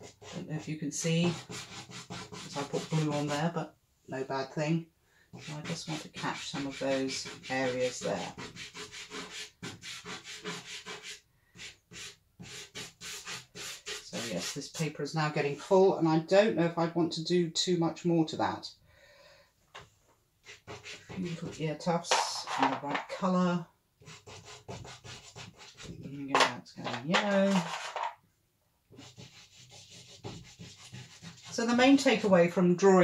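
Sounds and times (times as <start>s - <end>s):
pastel scratching on paper: 0.0s - 3.4s, 5.3s - 14.7s, 20.4s - 21.6s, 24.0s - 25.9s, 27.4s - 28.0s, 28.9s - 32.0s.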